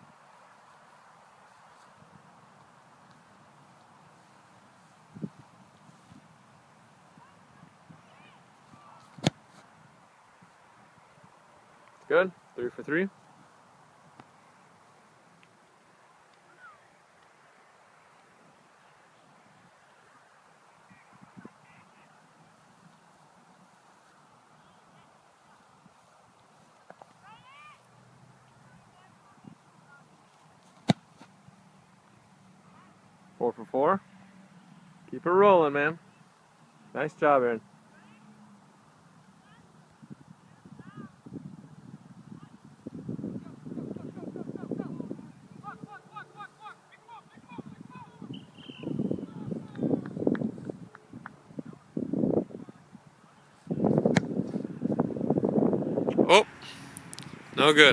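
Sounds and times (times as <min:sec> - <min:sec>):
wind rumble on microphone: 0:05.1 - 0:06.3, 0:39.9 - 0:45.9, 0:47.4 - 0:56.3
foot kicking football thud: 0:09.0 - 0:09.6, 0:30.7 - 0:31.4, 0:53.9 - 0:54.6.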